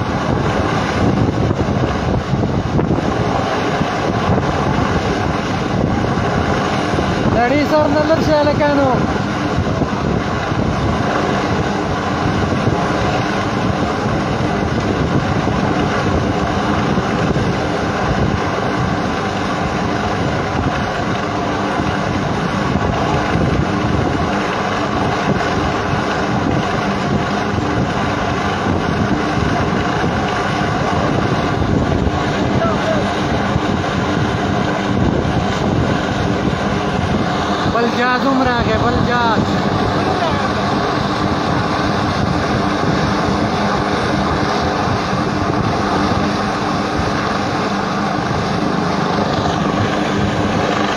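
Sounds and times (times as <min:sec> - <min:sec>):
helicopter hovering: 0:00.0 - 0:50.9.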